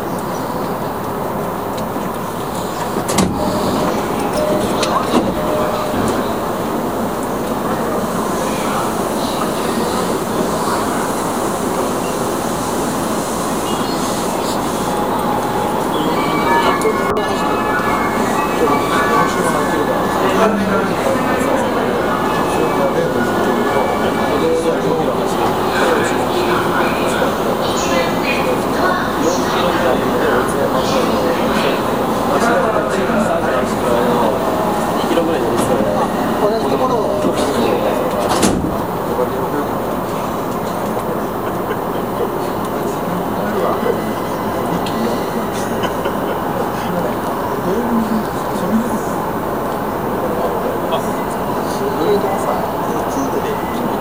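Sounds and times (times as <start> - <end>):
train running noise: 0.0 - 54.0
indistinct voices talking: 1.9 - 54.0
thin high whining tones: 10.8 - 27.4.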